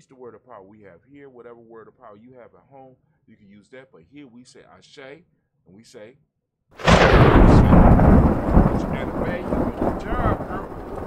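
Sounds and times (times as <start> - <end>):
thunder rumbling: 6.8 - 11.0.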